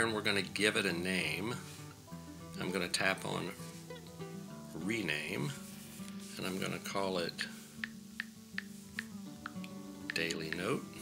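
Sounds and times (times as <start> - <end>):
soft acoustic guitar music: 0.0 - 11.0.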